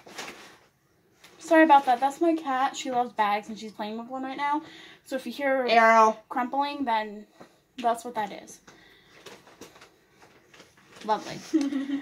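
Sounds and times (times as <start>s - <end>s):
plastic bag crinkling: 0.0s - 2.5s, 9.0s - 11.8s.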